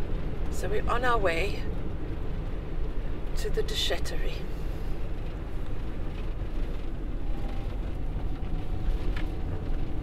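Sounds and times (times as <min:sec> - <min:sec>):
van engine and road rumble: 0:00.0 - 0:10.0.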